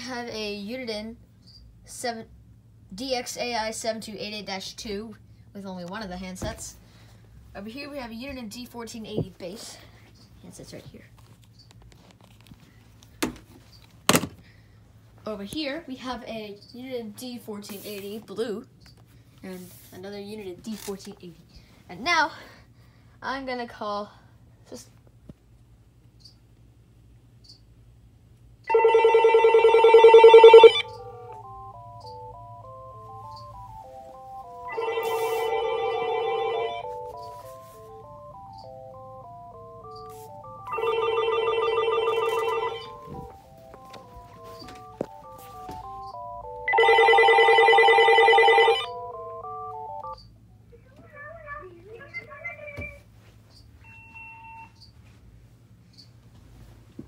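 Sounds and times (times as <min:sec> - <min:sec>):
melody ringtone: 0:28.7 - 0:50.2
warbling electronic phone ring: 0:28.7 - 0:50.2.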